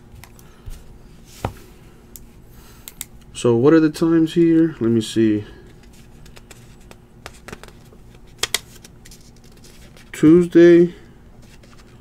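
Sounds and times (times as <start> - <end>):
faint handling sounds: 4.4 - 12.0.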